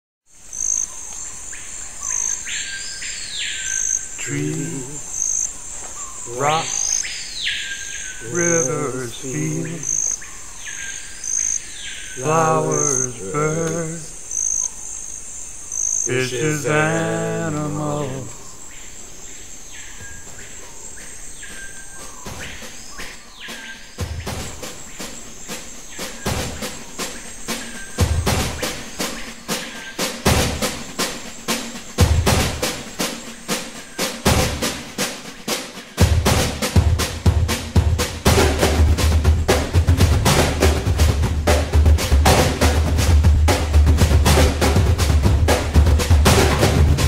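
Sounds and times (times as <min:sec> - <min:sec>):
insect chirp: 0:00.3 - 0:47.0
insect drone: 0:00.3 - 0:47.0
high-pitched insect trill: 0:00.4 - 0:23.0
rushing hiss: 0:01.8 - 0:14.6, 0:15.2 - 0:47.0
falling call: 0:04.0 - 0:05.4, 0:06.3 - 0:07.1, 0:08.2 - 0:10.2, 0:12.2 - 0:14.2, 0:16.0 - 0:18.4
drum beats: 0:04.2 - 0:05.2, 0:06.3 - 0:07.1, 0:08.2 - 0:10.1, 0:12.2 - 0:14.1, 0:16.1 - 0:18.3, 0:22.0 - 0:47.0.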